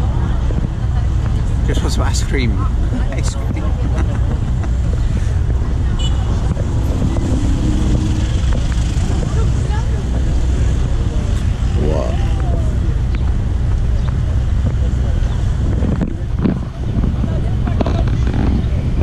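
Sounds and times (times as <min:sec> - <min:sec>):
faint voices: 0:00.0 - 0:19.0
road noise: 0:00.0 - 0:19.0
vehicle engine rumble: 0:00.0 - 0:19.0
wind on microphone: 0:00.0 - 0:19.0
person laughing: 0:02.9 - 0:05.0.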